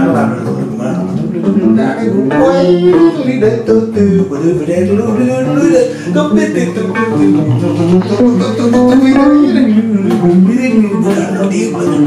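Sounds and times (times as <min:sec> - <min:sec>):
electric bass guitar: 0:00.0 - 0:12.0
man singing: 0:00.0 - 0:12.0.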